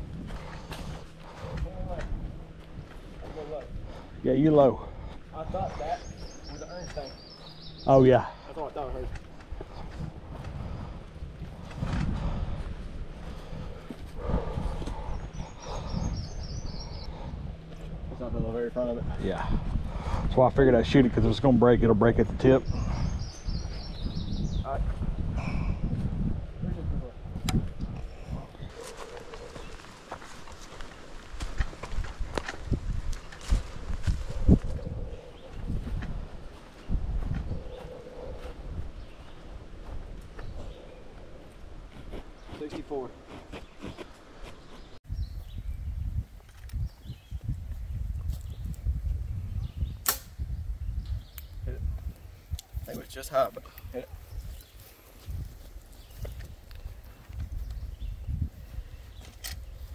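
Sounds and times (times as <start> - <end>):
wind rumbling on microphone: 0.0 - 59.9
microphone handling noise: 9.1 - 12.8
arrows striking targets: 50.0 - 50.4
bow string snapping: 50.0 - 50.4.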